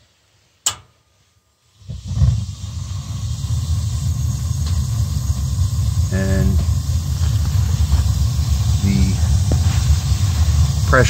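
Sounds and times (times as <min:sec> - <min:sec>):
gas burners rumbling: 0:01.7 - 0:11.0.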